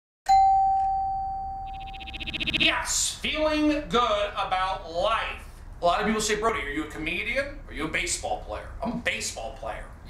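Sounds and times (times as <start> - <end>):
bell-like chime ding: 0.3 - 1.9
rapid fluttering buzz: 1.8 - 2.7.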